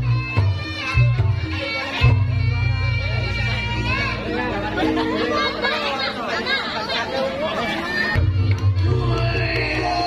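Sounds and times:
people talking: 0:00.9 - 0:10.0.

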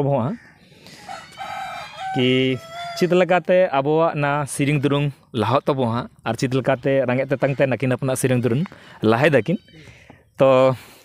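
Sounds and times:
rooster crowing: 0:00.9 - 0:03.4.

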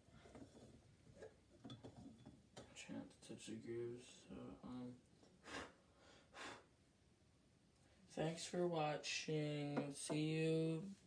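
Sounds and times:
faint clicks and taps: 0:00.1 - 0:02.8.

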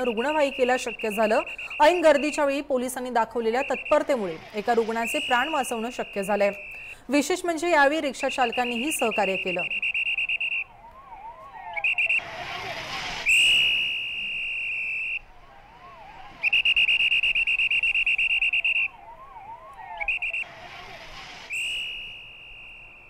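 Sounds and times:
shrill police whistle blasts: 0:00.0 - 0:02.6, 0:03.4 - 0:07.0, 0:08.1 - 0:15.3, 0:15.9 - 0:23.0
siren yelping: 0:00.0 - 0:23.0
short rushes of noise: 0:11.8 - 0:15.2, 0:19.9 - 0:23.0.

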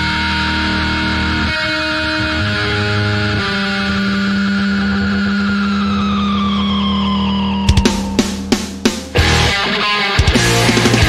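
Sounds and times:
high tone sliding downward: 0:00.0 - 0:11.0
sustained low note: 0:01.7 - 0:09.6.

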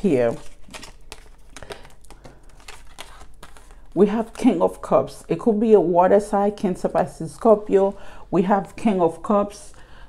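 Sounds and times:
cards rustling: 0:00.0 - 0:04.6
cards clicking: 0:00.4 - 0:03.8.

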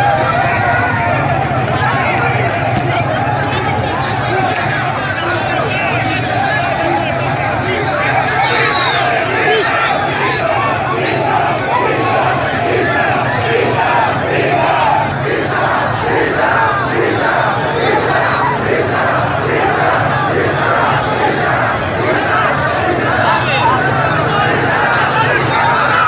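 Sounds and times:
crowd shouting a chant: 0:00.0 - 0:26.0.

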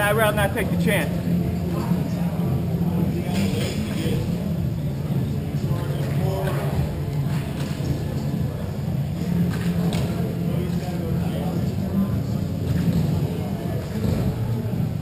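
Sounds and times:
music: 0:00.0 - 0:15.0
steady low hum: 0:00.0 - 0:15.0.

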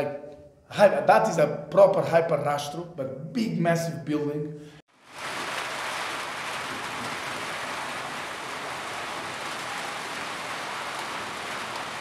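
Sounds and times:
steady rain falling: 0:04.9 - 0:12.0.

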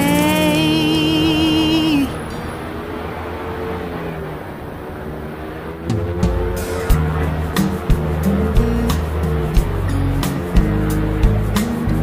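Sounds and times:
two-stroke engine running: 0:00.0 - 0:12.0
wind rushing: 0:02.1 - 0:12.0.

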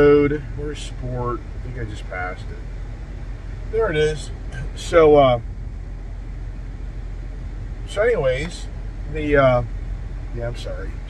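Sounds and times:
vehicle engine idling hum: 0:00.0 - 0:11.0.

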